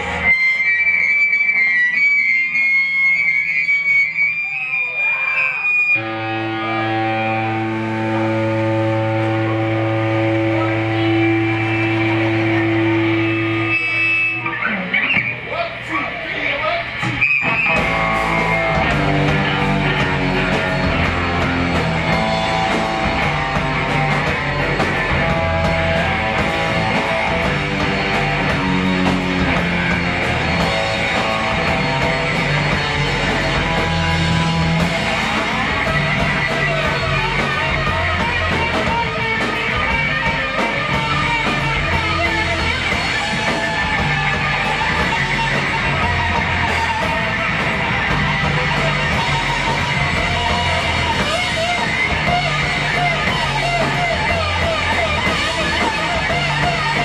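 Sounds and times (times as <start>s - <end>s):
distorted electric guitar: 0.0s - 57.0s
drums and rock band: 0.0s - 57.0s.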